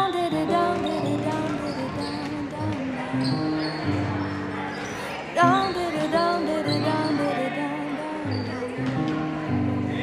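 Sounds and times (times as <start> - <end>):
pop song with singing: 0.0 - 4.1, 4.8 - 10.0.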